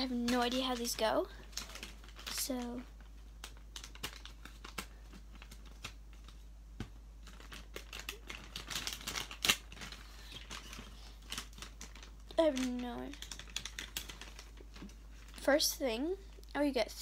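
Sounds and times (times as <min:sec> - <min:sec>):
plastic packet crinkling: 0:00.0 - 0:06.4, 0:07.2 - 0:15.6.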